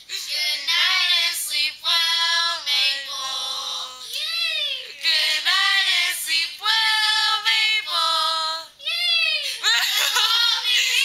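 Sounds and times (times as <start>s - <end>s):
girls singing together: 0.0s - 4.2s, 4.9s - 8.8s, 9.6s - 11.0s.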